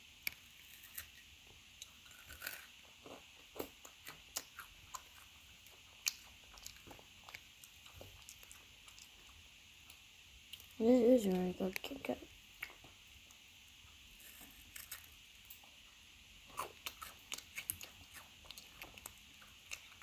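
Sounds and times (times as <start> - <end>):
person chewing crisp wafer: 0.2 - 10.8, 14.1 - 15.8, 16.4 - 20.0.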